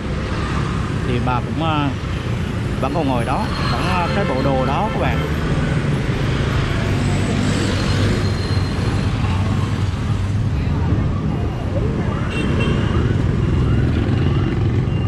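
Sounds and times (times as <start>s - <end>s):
motorbike and scooter traffic: 0.0s - 15.0s.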